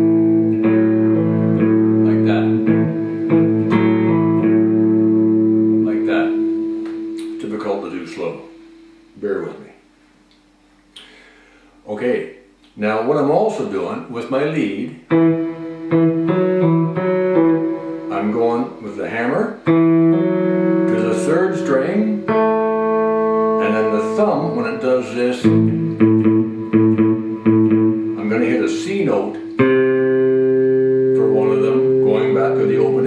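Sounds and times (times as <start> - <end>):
electric guitar blues lick: 0.0 - 8.8, 15.0 - 33.0.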